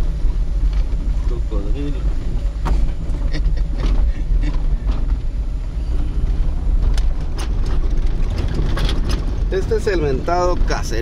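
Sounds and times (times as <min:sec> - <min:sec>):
car knocks and rattles: 0:00.0 - 0:05.6, 0:06.2 - 0:11.0
engine and tyres rumbling: 0:00.0 - 0:11.0.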